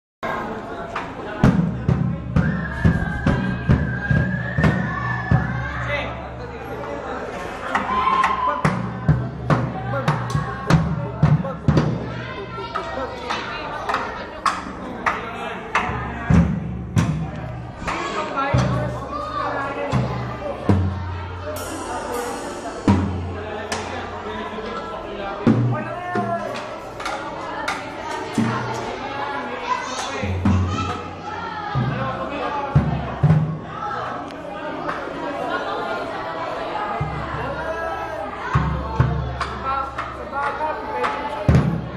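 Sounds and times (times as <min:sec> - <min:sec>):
background chatter of voices: 0:00.2 - 0:41.9
drum kit strikes: 0:15.7 - 0:19.0, 0:19.9 - 0:26.6
deep drum boom: 0:20.0 - 0:24.2.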